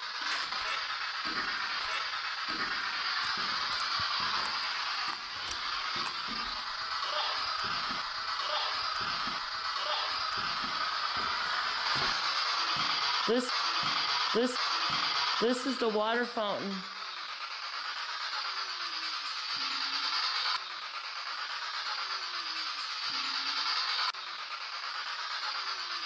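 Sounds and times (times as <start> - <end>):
footsteps climbing stairs: 2.5 - 6.9, 7.5 - 8.2, 8.8 - 14.1.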